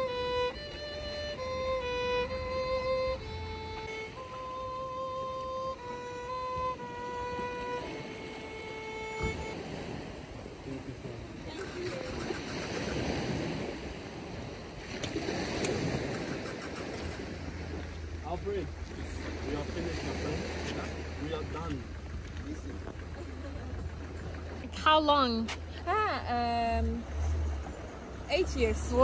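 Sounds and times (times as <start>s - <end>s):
solo violin slow notes: 0.0s - 10.7s
surf: 0.0s - 29.0s
wind: 0.0s - 29.0s
voices: 10.3s - 13.6s, 16.0s - 29.0s.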